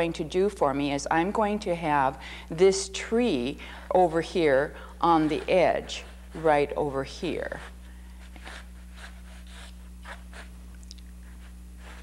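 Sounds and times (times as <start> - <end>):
electrical hum: 0.0 - 12.0
sketching tool scratching canvas: 5.0 - 6.5, 7.3 - 10.6, 11.2 - 12.0.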